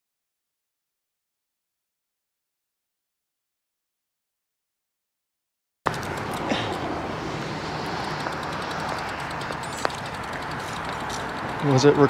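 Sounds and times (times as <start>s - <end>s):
road traffic: 5.9s - 12.0s
wind hiss: 5.9s - 12.0s.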